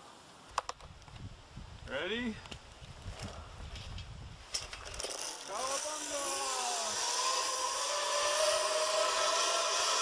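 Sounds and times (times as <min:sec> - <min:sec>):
wind rumble on microphone: 0:00.8 - 0:05.0.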